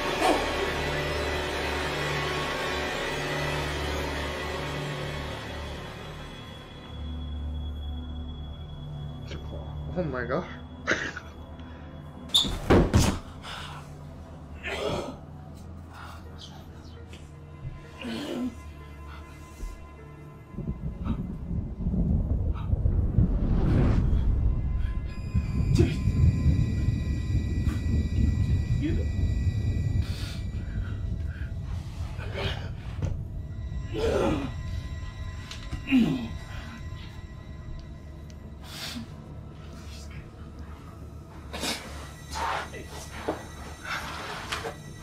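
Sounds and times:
low rumbling drone: 13.5s - 45.0s.

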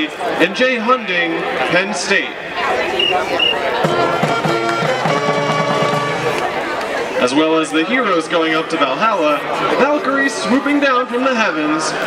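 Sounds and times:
marching band playing: 2.6s - 6.9s.

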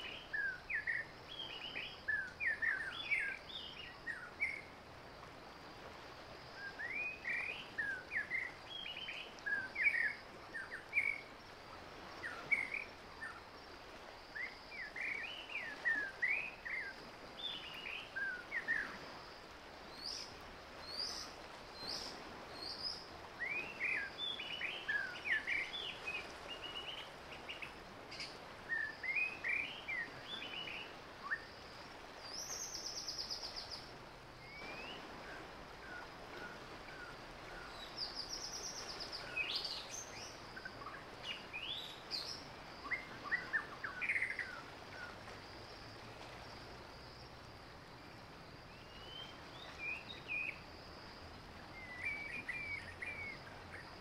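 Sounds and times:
faint steady hiss: 0.0s - 54.0s.

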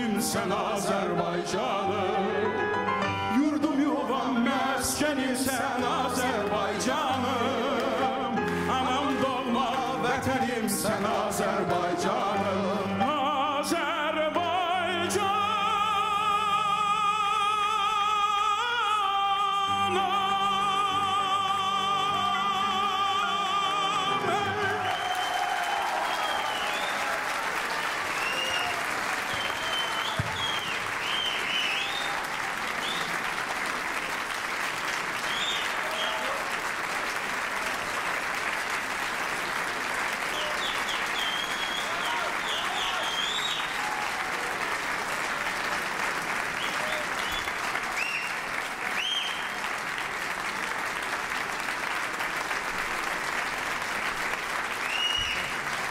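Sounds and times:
audience applauding: 3.8s - 13.4s, 19.7s - 55.9s
short high whistles: 46.6s - 48.4s, 54.9s - 55.5s.

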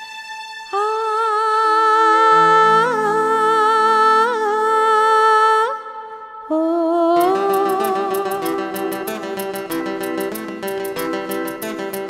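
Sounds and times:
guitar: 7.2s - 12.0s
light percussion tick: 7.2s - 12.0s.

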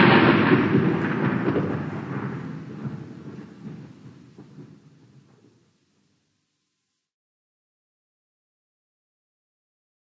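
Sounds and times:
thunder rumbling: 0.0s - 6.1s
faint crackles: 0.0s - 6.8s.

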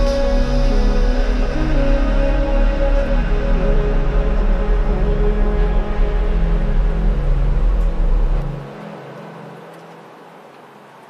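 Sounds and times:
deep bass: 0.0s - 8.6s
low synth drone: 0.0s - 11.0s.

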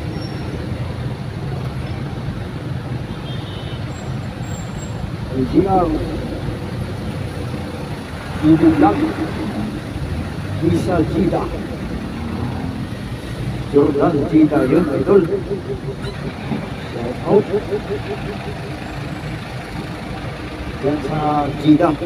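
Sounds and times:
vehicle engine and road rumble: 0.0s - 22.0s
voices: 5.2s - 13.0s, 13.6s - 22.0s.

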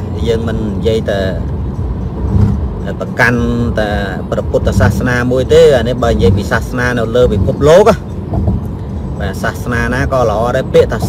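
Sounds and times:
man talking: 0.0s - 1.6s, 2.8s - 8.1s, 9.1s - 11.0s
car rumble from inside cabin: 0.0s - 11.0s.

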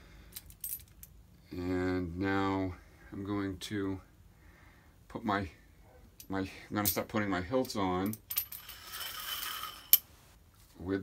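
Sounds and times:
metal scraping along threaded rod: 8.4s - 10.1s.

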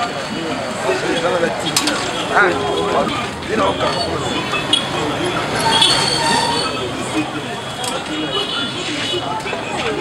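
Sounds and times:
many voices talking: 0.0s - 10.0s
traffic: 0.0s - 10.0s
high squeal: 3.0s - 7.6s.

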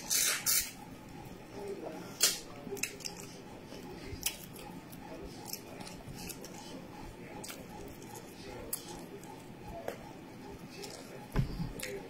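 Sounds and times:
person chewing food: 1.8s - 12.0s.

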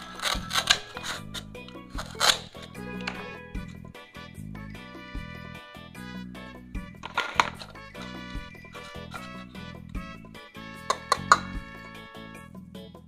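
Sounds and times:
plastic toy pieces clacking: 0.0s - 3.2s, 7.0s - 9.4s, 10.9s - 11.6s
background music: 0.0s - 13.0s.

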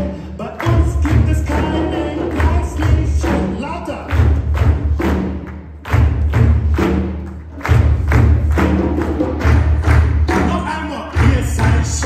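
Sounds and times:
audience clapping along: 0.0s - 12.0s.

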